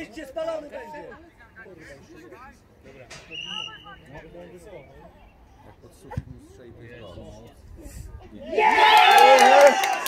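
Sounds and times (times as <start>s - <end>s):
referee's whistle: 3.3s - 4.1s.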